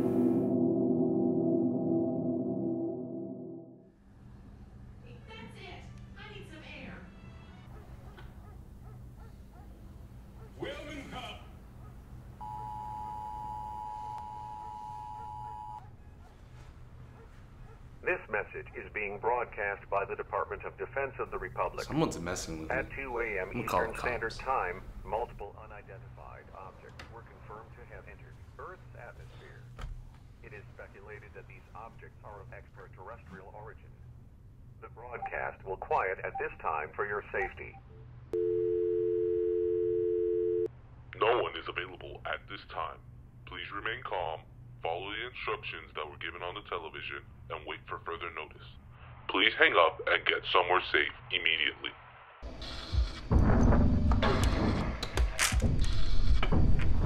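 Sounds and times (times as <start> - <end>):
phone line click: 12.4 - 15.8
telephone ringback tone: 12.4 - 15.8, 38.4 - 40.7.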